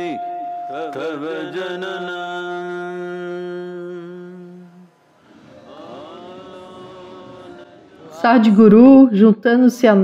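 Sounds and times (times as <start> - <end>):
man chanting a long note: 0.0 - 4.9.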